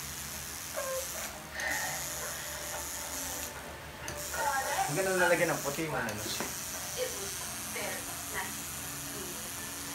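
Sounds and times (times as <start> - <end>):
tattoo machine buzzing: 0.0 - 9.9.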